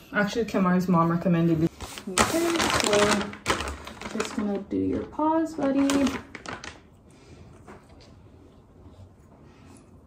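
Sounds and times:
plastic pack rustling: 1.7s - 7.0s.

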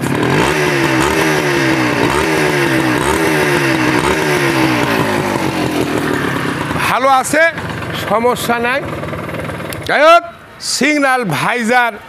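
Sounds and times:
two-stroke engine revving: 0.0s - 10.6s.

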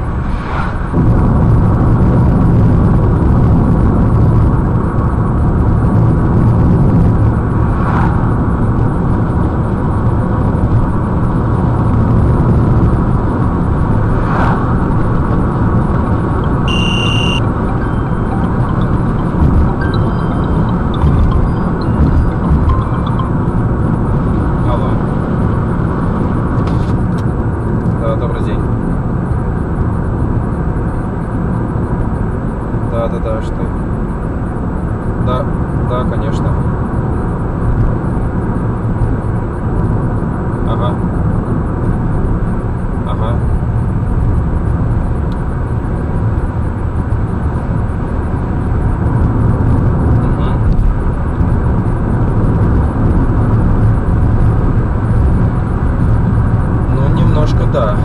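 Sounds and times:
car tyre and engine rumble: 0.0s - 58.0s.

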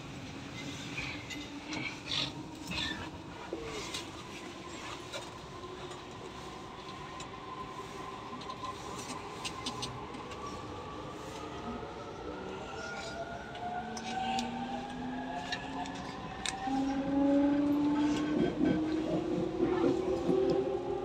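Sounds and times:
train interior hum: 12.4s - 21.0s.

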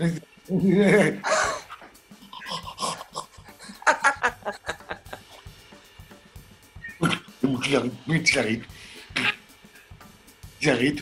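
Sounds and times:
man panting and whimpering: 1.2s - 1.8s.

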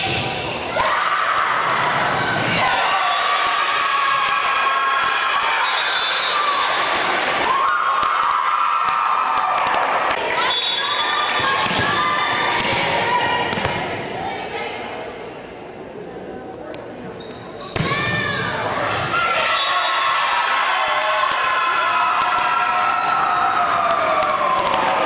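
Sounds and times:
crowd cheering and shouting: 0.0s - 13.6s, 17.8s - 25.0s.

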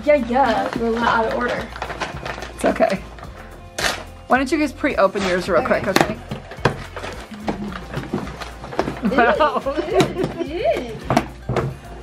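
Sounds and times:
background music: 0.0s - 12.0s
packaging rustling and crinkling: 0.2s - 4.1s, 5.1s - 9.3s.

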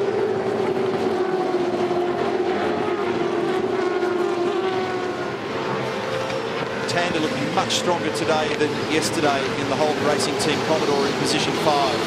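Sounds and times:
racing engines at high revs: 0.0s - 12.0s.

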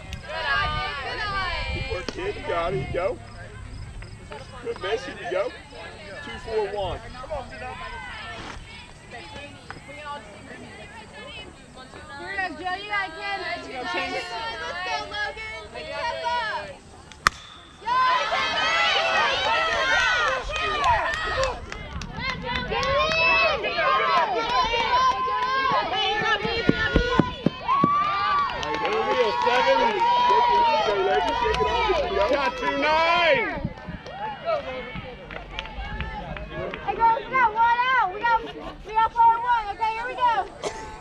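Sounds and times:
bat hitting ball: 17.1s - 19.0s
crowd cheering and shouting: 17.3s - 40.5s.

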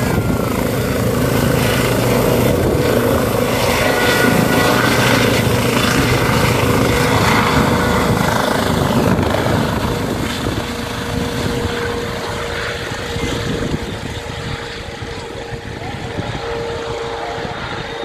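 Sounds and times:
helicopter rotor and turbine: 0.0s - 18.0s.

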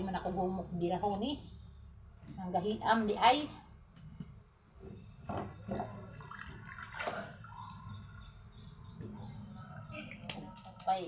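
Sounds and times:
small bird chirping: 7.3s - 10.6s.

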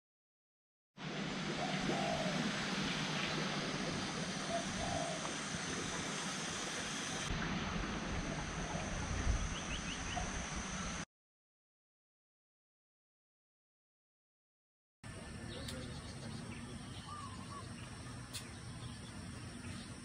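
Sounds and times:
steady hiss: 1.1s - 11.0s
low bird calls: 1.6s - 3.4s, 4.3s - 6.0s, 15.5s - 20.0s.

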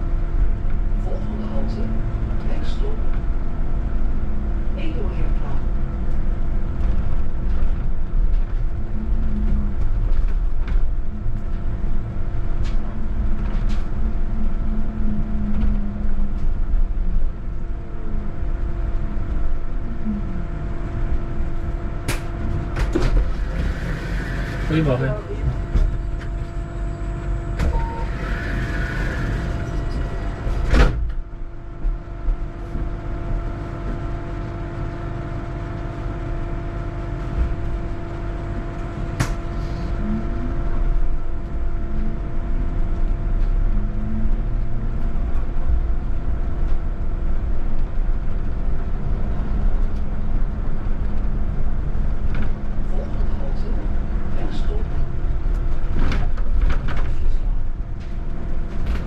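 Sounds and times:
road and tyre rumble: 0.0s - 59.0s
steady bus hum: 0.0s - 59.0s.

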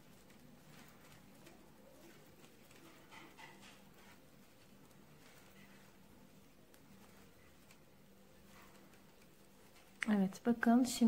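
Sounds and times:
knitting needles ticking: 0.0s - 10.8s
faint low hum: 0.0s - 11.0s.

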